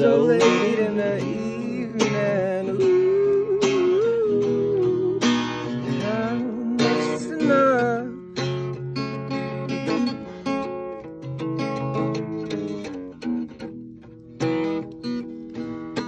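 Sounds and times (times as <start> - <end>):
person singing: 0.0 - 8.8
acoustic guitar strummed and picked: 0.0 - 16.0.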